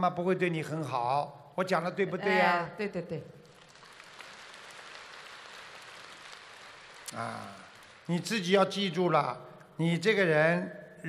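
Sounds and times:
audience applause: 3.5s - 8.2s.

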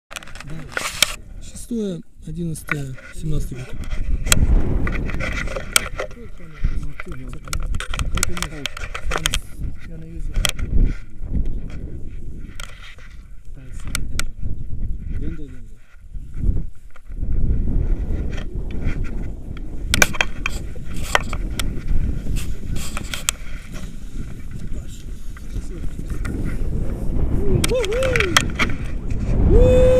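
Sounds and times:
handling clicks and rustling: 0.1s - 1.2s
wind buffeting microphone: 0.2s - 29.9s.

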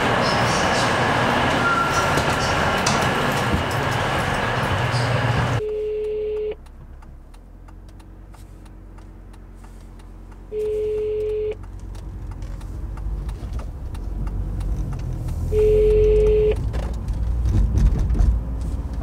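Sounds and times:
low hum of car cabin: 4.6s - 19.0s
telephone ringback beep: 5.6s - 6.6s, 10.6s - 11.6s, 15.6s - 16.6s.

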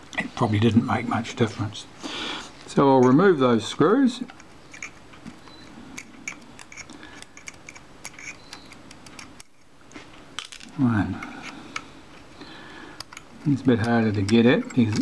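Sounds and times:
screwdriver ticking on screws: 13.0s - 15.0s.

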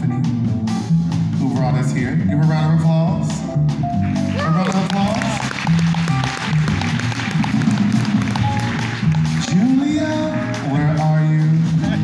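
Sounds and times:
drums: 0.0s - 12.0s
piano: 0.0s - 12.0s
upright bass: 0.0s - 12.0s
audience applauding: 4.0s - 10.6s.

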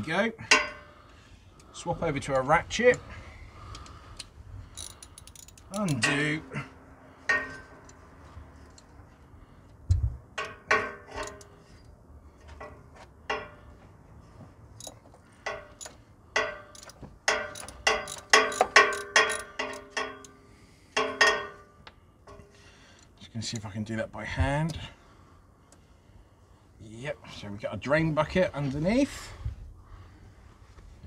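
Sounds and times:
socket ratchet clicking: 3.8s - 6.0s, 16.7s - 20.4s.

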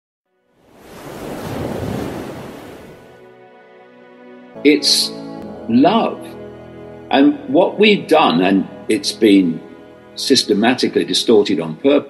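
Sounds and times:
ocean surf: 0.6s - 3.2s
soft sustained music chords: 3.1s - 12.0s.

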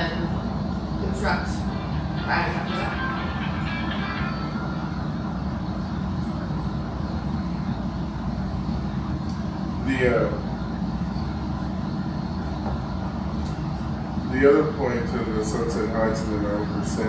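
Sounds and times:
low room rumble: 0.0s - 17.0s.

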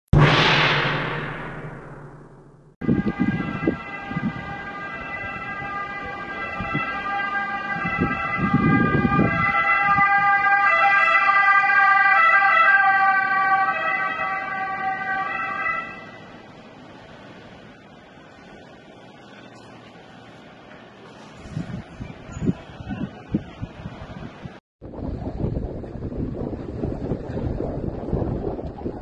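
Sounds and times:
emergency vehicle siren: 2.8s - 16.6s.

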